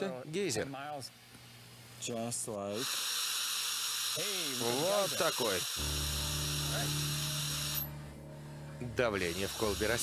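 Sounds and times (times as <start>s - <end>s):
gas hissing jet: 2.7s - 7.9s
steady low hum: 5.8s - 10.0s.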